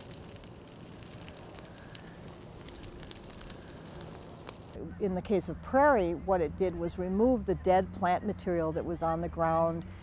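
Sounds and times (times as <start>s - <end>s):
dry grass fire crackling: 0.0s - 5.4s.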